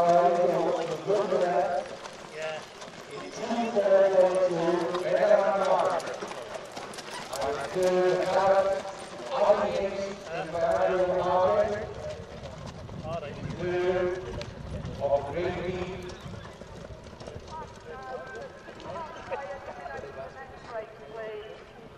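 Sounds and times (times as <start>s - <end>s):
people talking: 0.0s - 6.5s, 7.3s - 12.1s, 13.0s - 16.2s, 17.5s - 21.6s
horse hooves clip-clopping on dirt: 0.0s - 21.9s.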